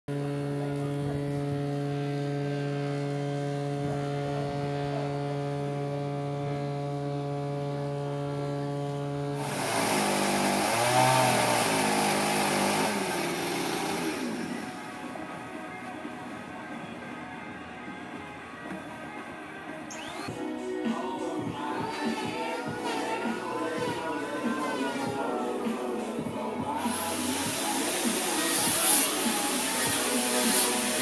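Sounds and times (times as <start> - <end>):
power tool cutting wood: 9.1 - 15.1, 19.9 - 20.5, 22.0 - 31.0
steady hum with overtones: 11.5 - 19.2, 19.8 - 31.0.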